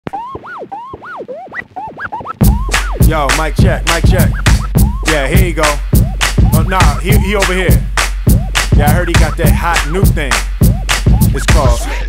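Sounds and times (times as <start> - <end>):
turntable scratching: 0.0 - 12.0.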